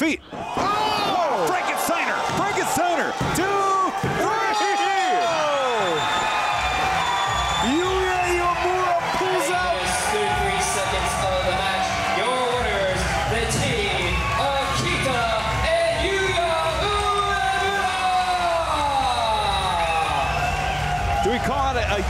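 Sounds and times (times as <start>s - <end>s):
crowd shouting and cheering: 0.0s - 22.0s.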